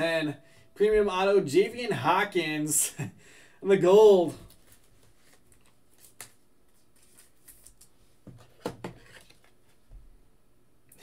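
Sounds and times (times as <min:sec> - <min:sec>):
trading cards clicking and rustling: 0:04.5 - 0:09.6.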